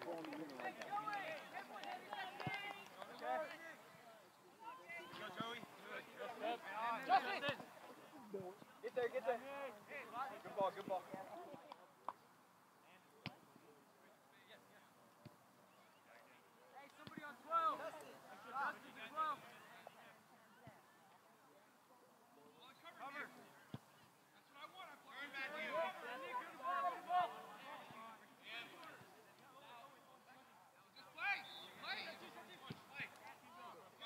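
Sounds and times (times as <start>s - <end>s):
players shouting and calling: 0.0s - 12.1s, 14.2s - 20.9s, 22.4s - 34.0s.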